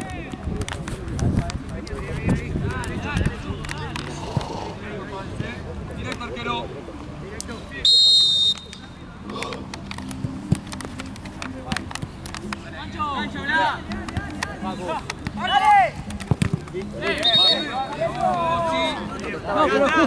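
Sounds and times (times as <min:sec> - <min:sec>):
referee's whistle blast: 0:07.8 - 0:08.8, 0:17.1 - 0:17.8
players shouting: 0:13.1 - 0:20.0.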